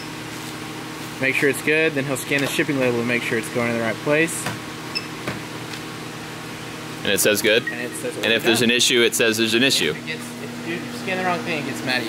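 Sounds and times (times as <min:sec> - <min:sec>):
ventilation fans humming: 0:00.0 - 0:12.0.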